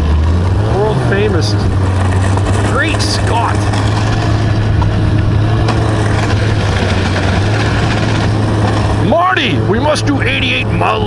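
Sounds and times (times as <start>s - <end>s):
snowmobile engine droning: 0.0s - 11.0s.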